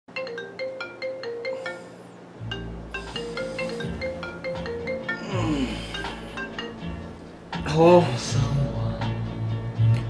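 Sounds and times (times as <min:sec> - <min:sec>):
marimba-like phone ringtone: 0:00.1 - 0:07.2.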